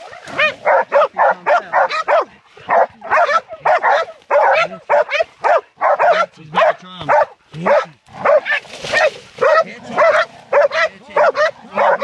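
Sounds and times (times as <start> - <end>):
puppies barking and yelping: 0.0 - 12.0.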